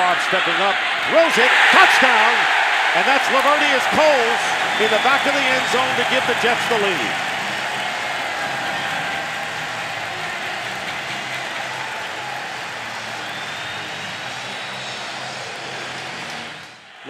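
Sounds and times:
stadium crowd cheering: 0.0s - 17.0s.

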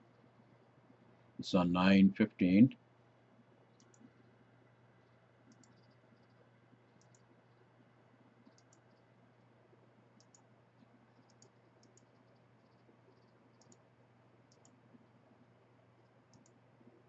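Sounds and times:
faint steady hum: 0.0s - 17.0s
computer mouse clicks: 3.7s - 4.3s, 5.0s - 7.6s, 8.4s - 9.1s, 10.2s - 13.9s, 14.5s - 14.8s, 16.0s - 16.6s.

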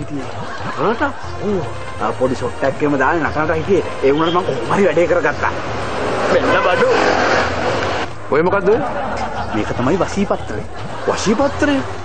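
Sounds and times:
steady background noise: 0.0s - 12.0s
man talking: 6.2s - 7.0s.

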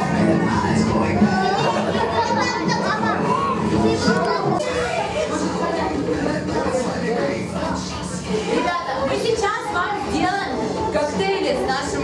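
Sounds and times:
children talking and exclaiming: 0.0s - 12.0s.

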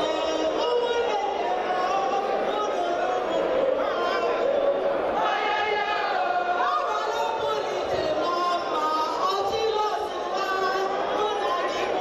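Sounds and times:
women singing and calling out: 0.0s - 4.5s, 5.6s - 12.0s.

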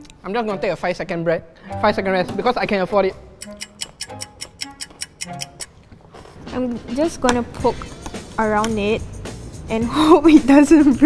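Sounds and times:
background music: 0.0s - 11.0s
fast clock ticking: 3.3s - 5.7s.

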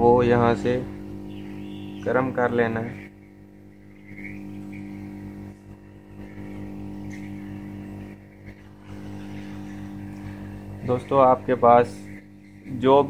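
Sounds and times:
heat gun motor hum: 0.7s - 13.0s.

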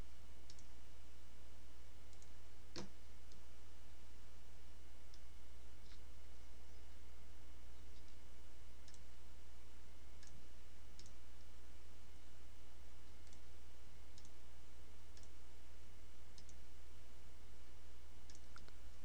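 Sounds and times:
low electrical hum and hiss: 0.0s - 19.0s.

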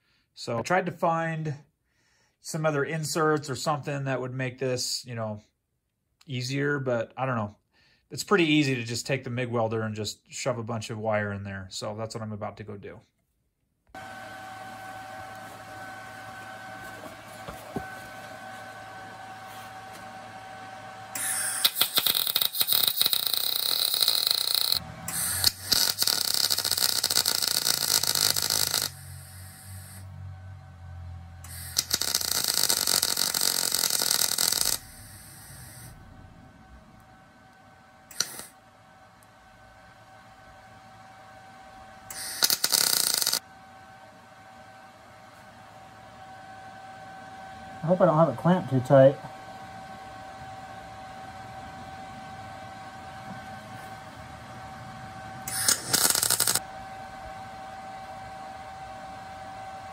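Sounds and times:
faint steady hum: 13.9s - 59.9s
welder arc crackling: 21.2s - 30.1s, 31.4s - 35.9s, 37.5s - 38.6s, 42.1s - 43.4s, 55.5s - 56.6s.

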